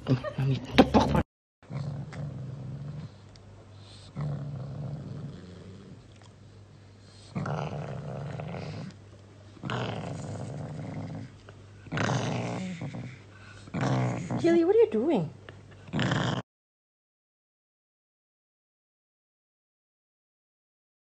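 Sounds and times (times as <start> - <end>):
dog growling: 1.0 - 9.0, 9.6 - 14.8, 15.7 - 16.4.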